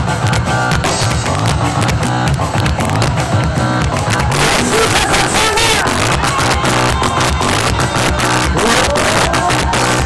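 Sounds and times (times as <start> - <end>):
live band music: 0.0 - 10.0
pulsing bass beat: 0.0 - 10.0.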